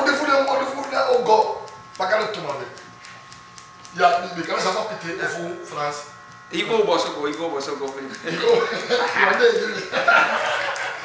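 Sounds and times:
men talking: 0.0 - 2.8, 3.9 - 10.9.

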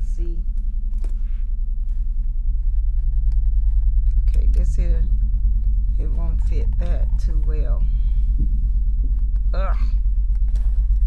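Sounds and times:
loud low rumble: 0.0 - 11.0
pen clicking and rubbing in leather loop: 0.5 - 11.0.

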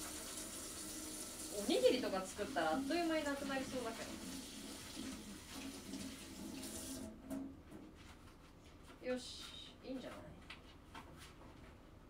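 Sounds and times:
water running from tap: 0.0 - 7.2.

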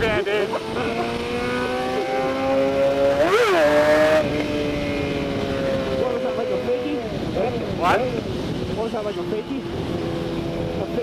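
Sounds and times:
motorcycle engine running: 0.0 - 11.0.

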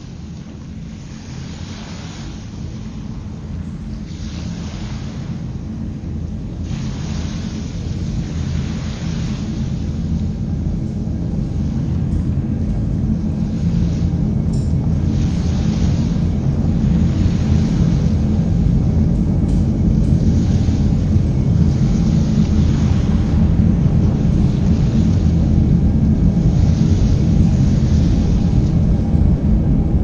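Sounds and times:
low drone: 0.0 - 30.0
washes of noise: 0.0 - 30.0.

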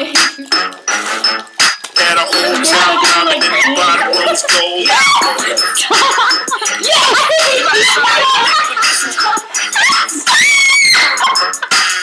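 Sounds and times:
hip-hop music: 0.0 - 12.0
girl screaming: 4.8 - 5.4, 6.8 - 8.6, 9.8 - 11.3.

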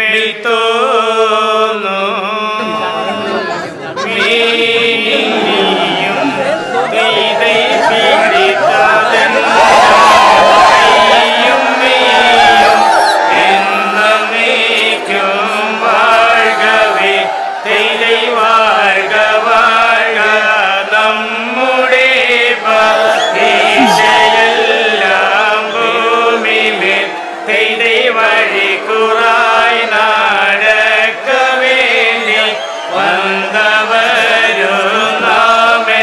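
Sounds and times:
male voices chanting: 0.0 - 36.0.

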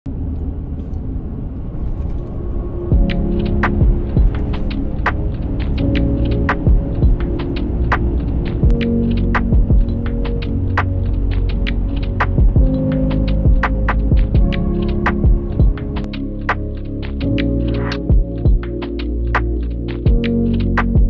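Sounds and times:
truck driving: 0.1 - 18.0
sharp irregular clicks: 2.9 - 21.0.

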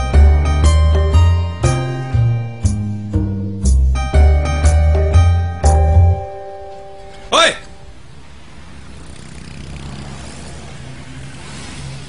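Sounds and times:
road and traffic noise: 3.8 - 12.0.

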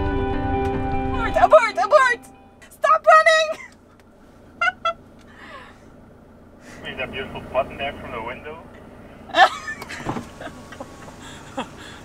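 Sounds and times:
low steady hum: 0.0 - 12.0
people talking: 1.2 - 3.7, 6.8 - 8.7.

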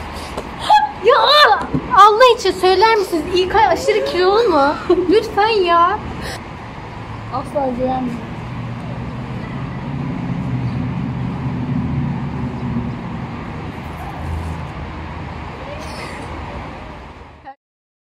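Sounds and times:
street traffic rumble: 0.0 - 17.6.

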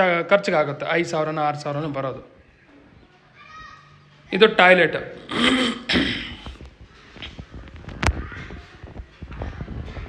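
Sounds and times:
person clearing throat: 5.2 - 6.6.

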